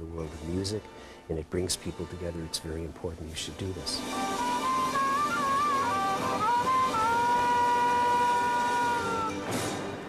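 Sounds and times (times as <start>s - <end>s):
quiet backing music: 0.0s - 10.0s
blues harmonica chord: 4.0s - 10.0s.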